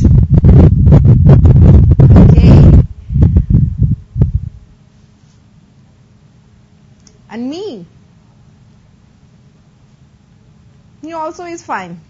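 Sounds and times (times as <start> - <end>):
muffled thumps on lapel microphone: 0.0 - 5.4
faint room hum: 0.0 - 12.0.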